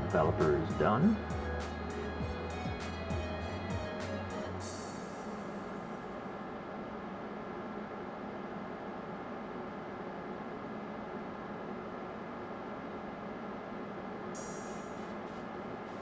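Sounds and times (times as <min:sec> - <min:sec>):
low hum and hiss: 0:00.0 - 0:16.0.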